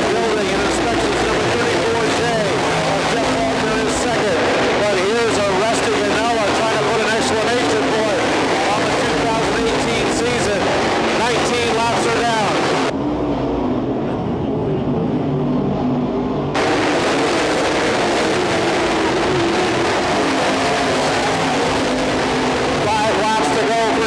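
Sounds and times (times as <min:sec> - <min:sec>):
race car engines running hard: 0:00.0 - 0:24.0.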